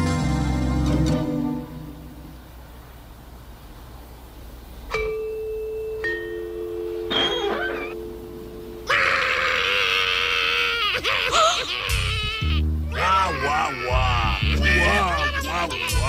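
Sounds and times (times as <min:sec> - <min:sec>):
two-note doorbell chime: 0:04.9 - 0:08.9
voices wailing like babies: 0:07.2 - 0:08.0, 0:08.8 - 0:16.0.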